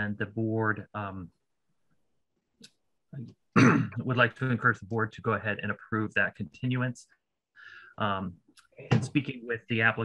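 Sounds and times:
man speaking: 0.0 - 1.4, 3.2 - 7.1, 8.0 - 10.0
man clearing throat: 3.6 - 4.0.

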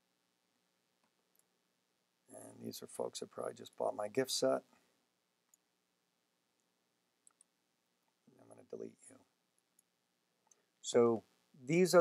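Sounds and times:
computer mouse clicks: 6.6 - 7.5.

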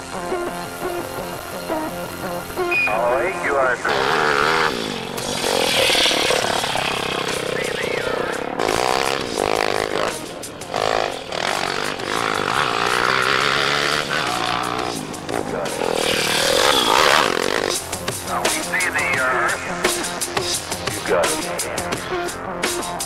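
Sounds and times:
pit bike engine revving: 0.0 - 23.0.

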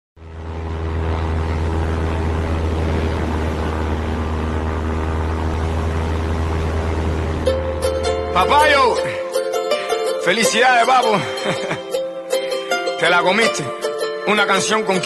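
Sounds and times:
diesel engine droning: 0.2 - 15.0
music: 7.4 - 15.0.

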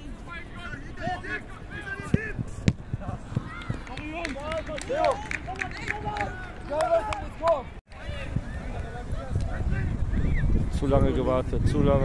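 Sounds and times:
football thuds: 2.0 - 3.8.

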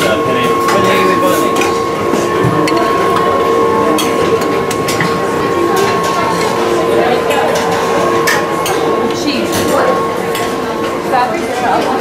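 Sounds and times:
busy kitchen background: 0.0 - 12.0
high two-tone whine: 0.0 - 12.0.

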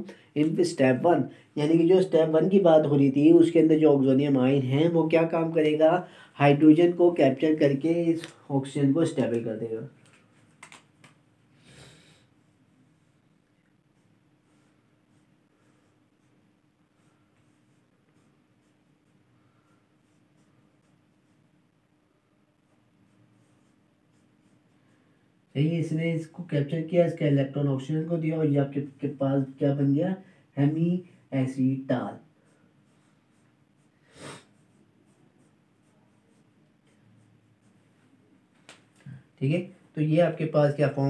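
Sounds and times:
short breath: 6.0 - 6.4, 11.5 - 12.3
marker writing on whiteboard: 9.0 - 11.2, 12.3 - 21.8, 22.6 - 25.1, 32.1 - 38.9
steady low hum: 11.2 - 41.0
marker squeaking on whiteboard: 13.6 - 21.5, 22.7 - 24.8.

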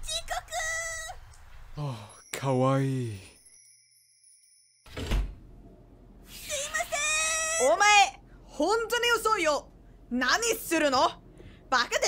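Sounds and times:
man speaking: 1.8 - 3.4.

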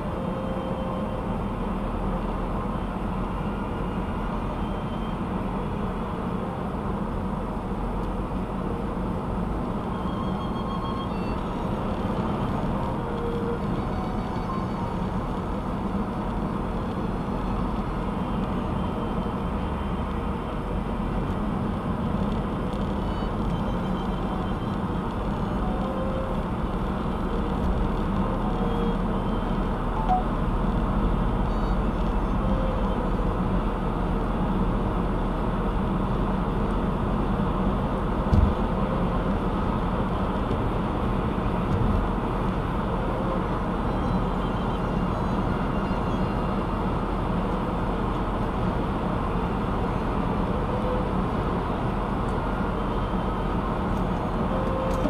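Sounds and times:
tyre and engine rumble: 0.0 - 55.0.

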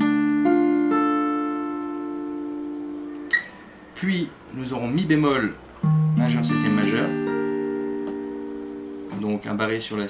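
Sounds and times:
acoustic guitar chord: 0.0 - 4.0, 5.8 - 9.2.

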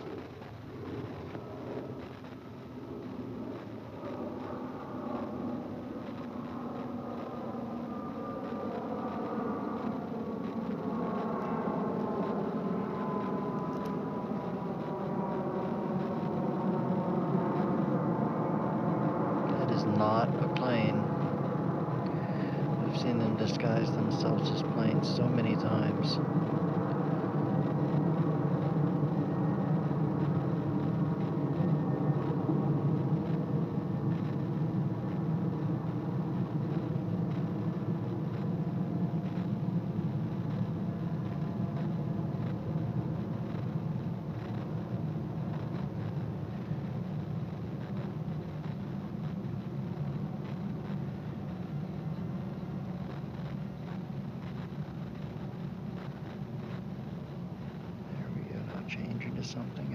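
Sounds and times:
aircraft engines droning: 0.0 - 59.9.

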